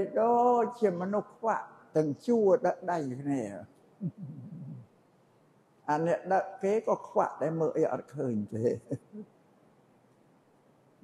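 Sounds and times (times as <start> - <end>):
short low voice sound: 3.1 - 4.8.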